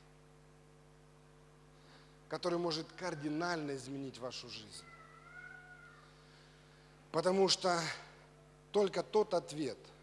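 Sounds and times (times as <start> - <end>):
faint high whine: 0.0 - 10.0
low electrical hum: 0.0 - 10.0.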